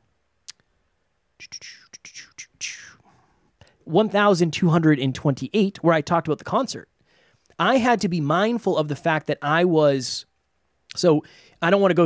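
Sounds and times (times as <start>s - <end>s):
person whispering: 1.4s - 3.0s.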